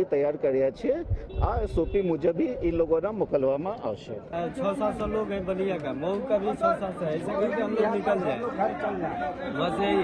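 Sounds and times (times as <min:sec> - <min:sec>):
crowd chatter: 0:03.9 - 0:10.0.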